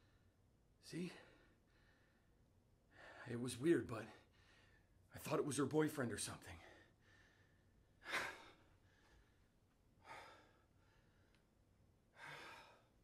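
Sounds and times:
man breathing out heavily: 6.7s - 11.3s, 12.1s - 13.0s.

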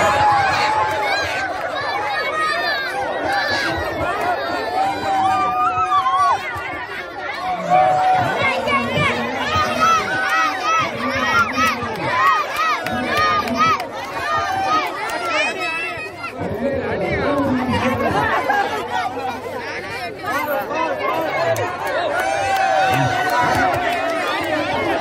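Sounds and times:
crowd talking and calling out: 0.0s - 25.0s
people shouting: 7.4s - 16.2s.

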